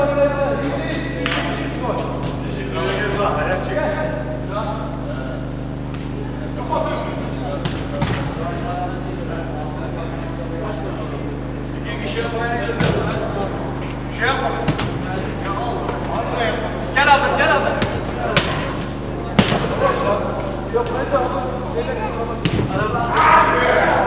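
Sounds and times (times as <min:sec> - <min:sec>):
steady low hum: 0:00.0 - 0:24.0
players shouting: 0:22.8 - 0:24.0.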